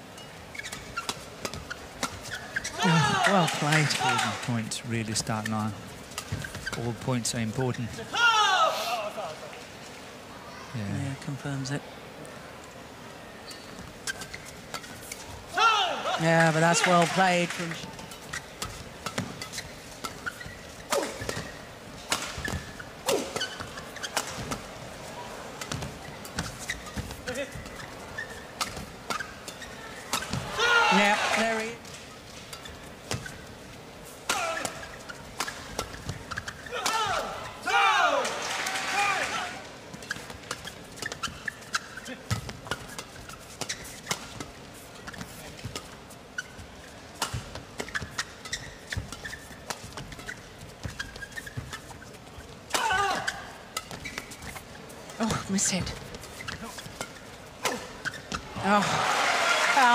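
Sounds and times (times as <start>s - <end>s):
loud voices exclaiming: 2.8s - 4.4s, 8.1s - 9.2s.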